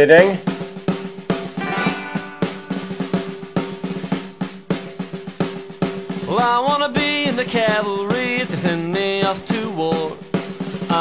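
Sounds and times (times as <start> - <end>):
snare drum rolls: 1.5 - 4.3
held low note: 1.6 - 3.5.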